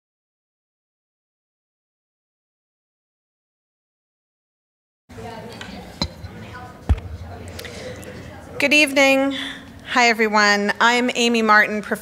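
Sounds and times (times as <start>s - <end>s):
faint voices murmuring: 5.1s - 10.0s.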